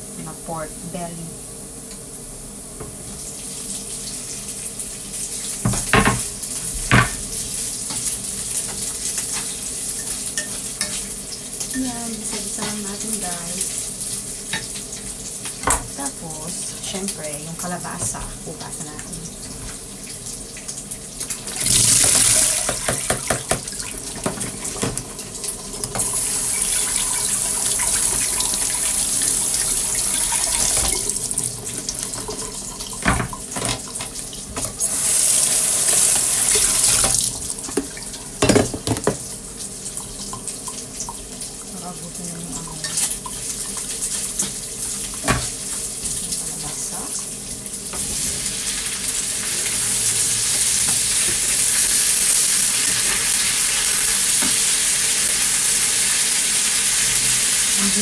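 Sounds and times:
food sizzling in frying pan: 0.0s - 58.0s
kitchen tap running: 2.8s - 58.0s.

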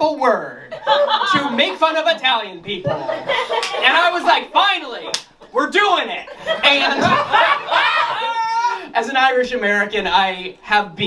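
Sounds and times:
man speaking: 0.0s - 7.3s, 8.8s - 11.0s.

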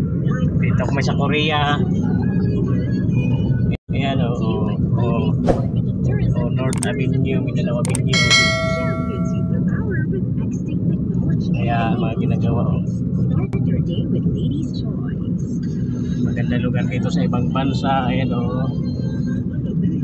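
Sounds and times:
road and engine rumble in car: 0.0s - 8.8s, 9.4s - 20.0s
bell-like ding: 7.9s - 9.7s.

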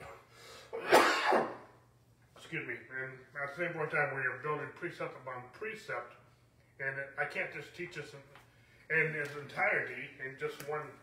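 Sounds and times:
man coughing: 0.8s - 1.7s.

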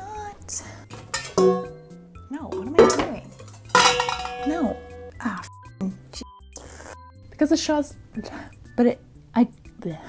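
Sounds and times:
metal kitchenware clanking: 0.9s - 5.1s.

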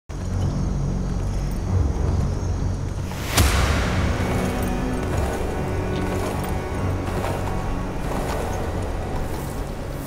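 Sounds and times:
low rumbling drone: 0.3s - 10.0s.

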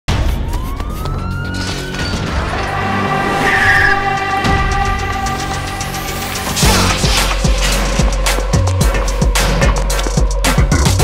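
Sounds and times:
rising siren-like tone: 0.1s - 6.2s.

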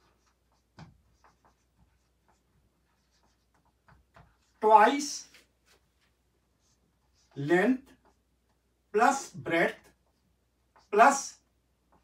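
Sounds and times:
marker scratching on whiteboard: 0.0s - 12.0s.

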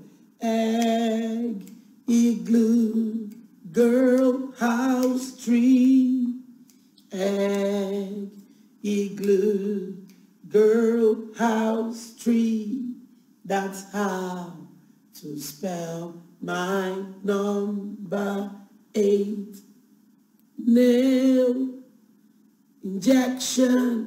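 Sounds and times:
woman singing unaccompanied: 0.0s - 19.6s, 20.6s - 21.9s, 22.8s - 24.0s.

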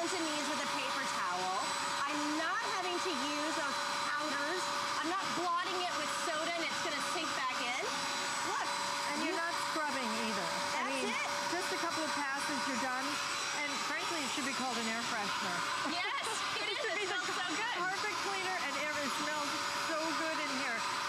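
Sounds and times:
carpet cleaner motor whir: 0.0s - 21.0s
hose tool scrubbing carpet: 0.0s - 21.0s.

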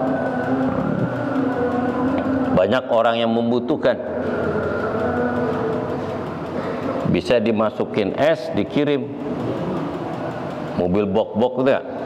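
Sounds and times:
faint constant hum: 0.0s - 12.0s.

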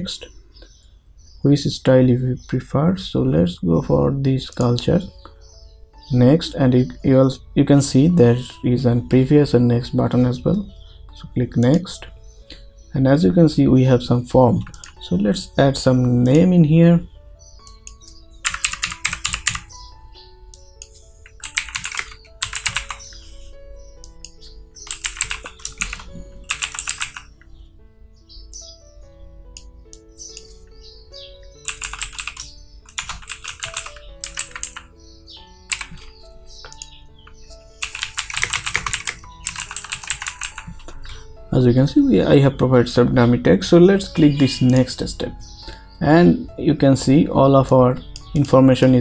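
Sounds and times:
soft background music: 0.0s - 49.0s
typing on computer keyboard: 17.8s - 19.7s, 21.3s - 23.0s, 24.8s - 27.3s, 31.6s - 34.9s, 35.7s - 36.1s, 37.8s - 41.0s.

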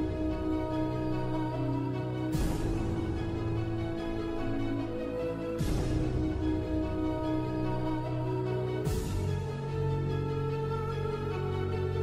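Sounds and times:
slow instrumental music: 0.0s - 12.0s.

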